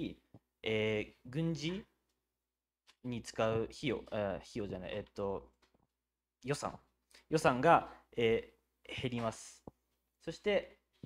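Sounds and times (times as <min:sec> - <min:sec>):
person speaking: 0:00.0 - 0:02.0, 0:02.9 - 0:05.7, 0:06.4 - 0:11.0.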